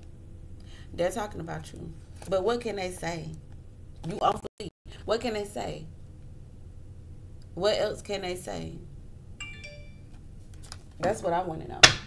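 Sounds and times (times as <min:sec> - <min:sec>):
electronic chime: 0:09.4 - 0:10.1.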